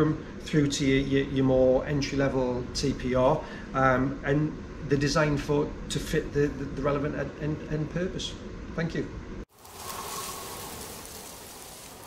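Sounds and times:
rain-like hiss: 9.5 - 12.0.

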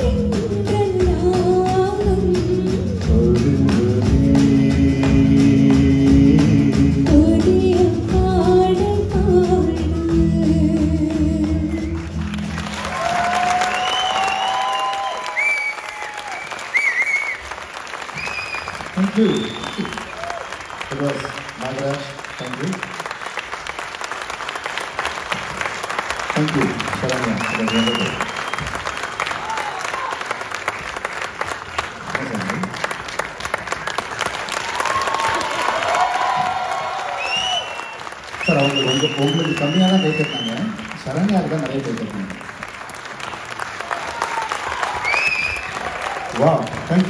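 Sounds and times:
audience applauding: 11.5 - 47.0
whistles and cheers: 12.7 - 20.6, 27.2 - 30.3, 34.6 - 40.8, 43.9 - 46.4.

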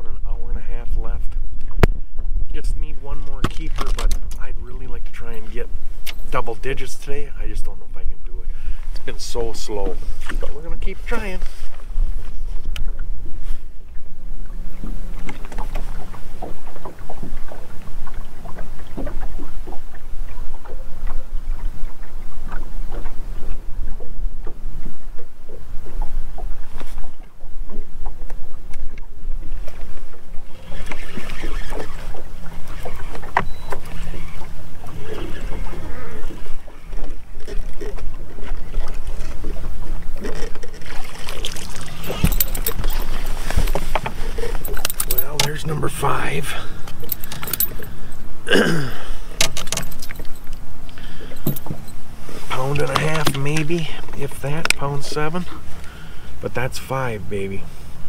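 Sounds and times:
water noise: 0.0 - 58.0
wind: 0.0 - 58.0
fish splashing: 30.5 - 45.0.

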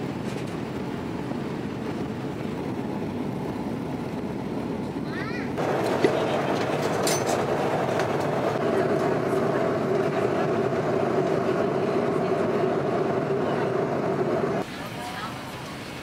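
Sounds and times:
jet engine cabin drone: 0.0 - 16.0.

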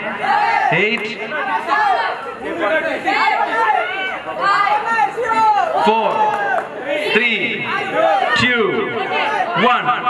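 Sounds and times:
man speaking into a microphone: 0.0 - 1.5, 7.0 - 10.0
group of voices counting aloud: 0.0 - 10.0.

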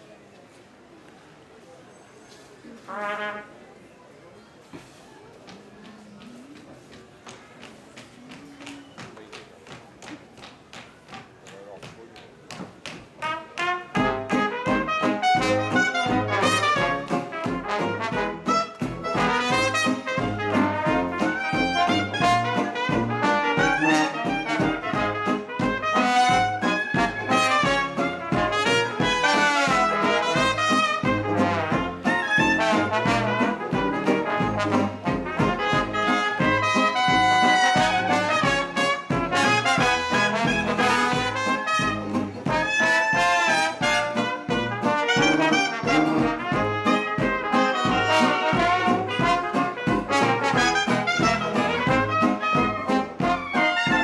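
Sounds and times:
live jazz band playing: 13.2 - 54.0.

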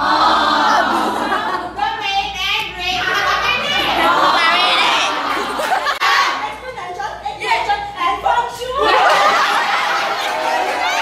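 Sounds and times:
group of students singing: 0.0 - 1.4.

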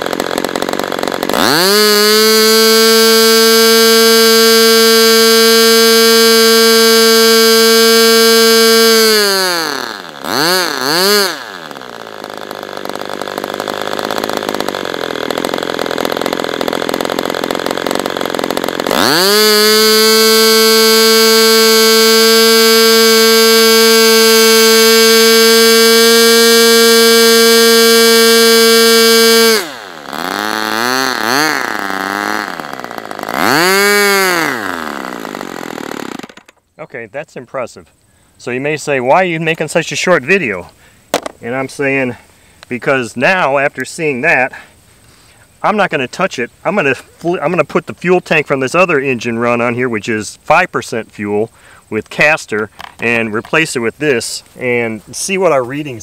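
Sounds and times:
model engine whining and revving: 0.0 - 36.6.

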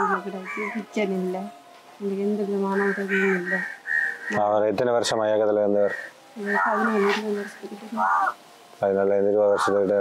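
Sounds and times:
crow cawing: 0.0 - 1.0, 2.6 - 4.5, 5.2 - 8.4, 9.4 - 10.0
voice: 0.0 - 3.7, 4.3 - 8.1, 8.8 - 10.0.

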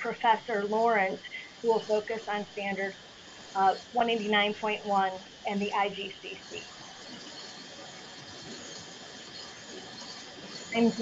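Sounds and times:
faint microphone hiss: 0.0 - 11.0.

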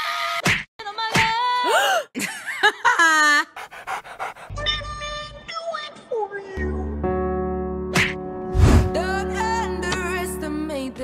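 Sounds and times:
dog panting: 3.4 - 5.1.

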